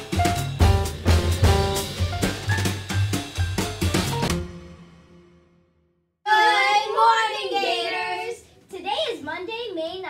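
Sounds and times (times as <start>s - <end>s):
child speaking: 6.3s - 10.0s.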